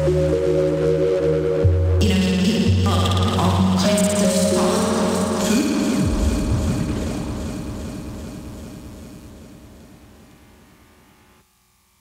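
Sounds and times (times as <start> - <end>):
rumbling electronic texture: 2.0 - 11.4.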